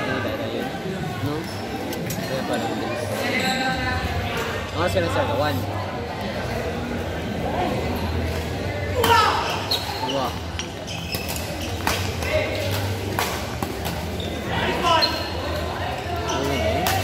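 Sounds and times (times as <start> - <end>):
rackets striking shuttlecock: 11.2 - 14.0.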